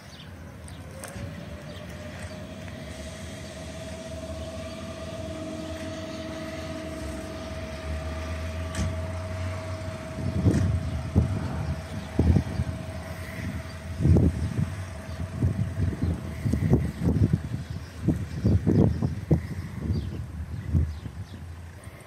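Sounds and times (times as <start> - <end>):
electric train whine: 0.0 - 22.0
low train rumble: 0.0 - 22.0.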